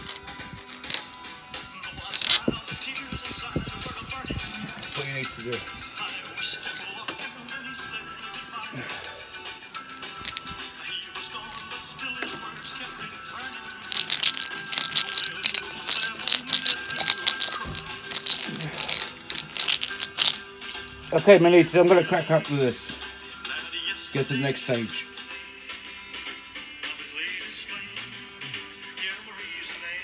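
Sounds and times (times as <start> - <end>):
screwdriver clicking and rattling: 0.0 - 1.2, 2.1 - 2.5, 10.2 - 10.6, 13.9 - 20.4
background music with singing: 0.0 - 30.0.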